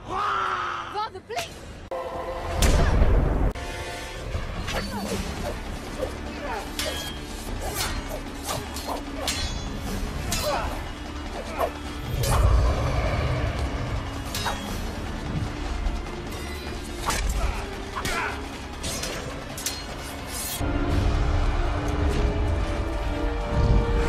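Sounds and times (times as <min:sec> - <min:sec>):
dramatic music with deep rumble: 0:00.0 - 0:24.0.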